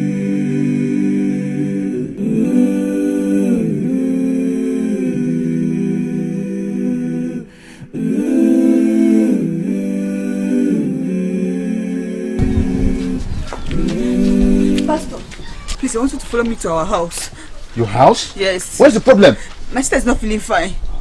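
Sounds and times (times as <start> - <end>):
hummed wordless vocal chords: 0.0 - 15.4.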